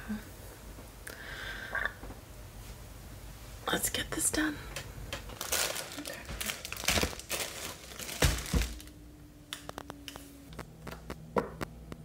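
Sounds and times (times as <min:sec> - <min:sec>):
plastic bag crinkling: 0:05.2 - 0:09.0.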